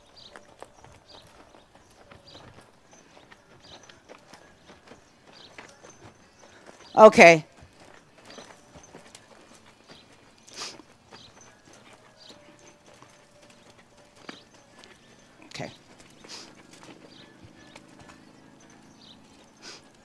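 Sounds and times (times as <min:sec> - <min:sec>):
horse hoofbeats on sand: 0:00.0 - 0:20.0.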